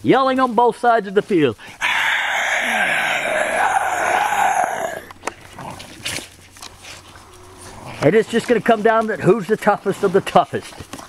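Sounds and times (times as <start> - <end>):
dogs growling: 1.8 - 6.2.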